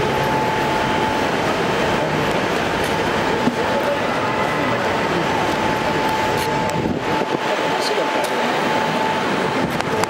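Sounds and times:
high-pitched hum: 0.0 - 10.0
loud steady rumbling: 0.0 - 10.0.

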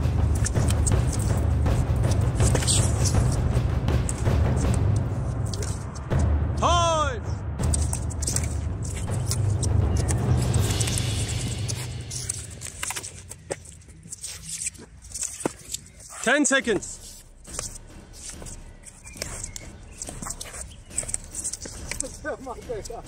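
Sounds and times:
person shouting: 6.6 - 7.3.

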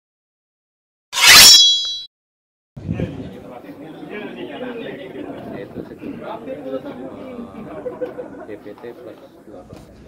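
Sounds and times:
loud hit with metallic ring: 1.2 - 2.1.

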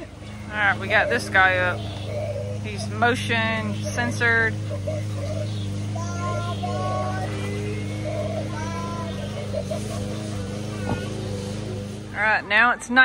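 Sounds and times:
eerie gliding tones: 0.0 - 13.0.

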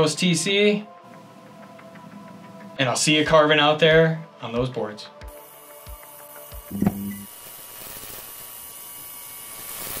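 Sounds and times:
electric hum with hiss: 3.7 - 10.0.

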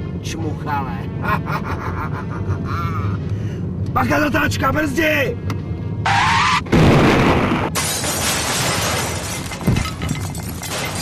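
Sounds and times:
car tyres squealing: 6.0 - 6.8
loud crash: 6.7 - 11.0.

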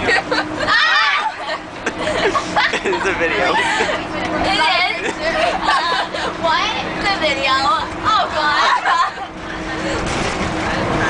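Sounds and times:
moving bus hum: 0.0 - 11.0
excited voices of girls: 0.6 - 1.6, 4.4 - 9.3.

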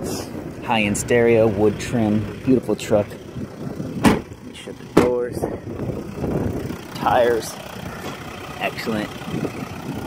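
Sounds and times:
diesel engine idling: 0.0 - 10.0
car door slamming: 4.0 - 5.3.

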